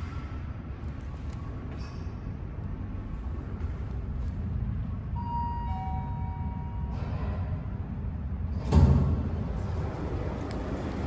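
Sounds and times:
steady low rumble: 0:00.0 - 0:11.0
two-tone elevator chime: 0:05.2 - 0:07.0.

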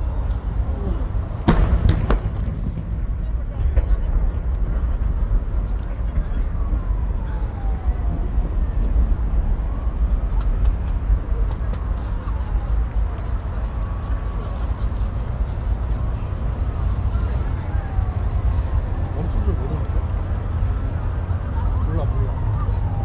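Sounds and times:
crowd voices: 0:00.0 - 0:23.0
low rumble: 0:00.0 - 0:23.0
fireworks bursting: 0:01.3 - 0:07.7.

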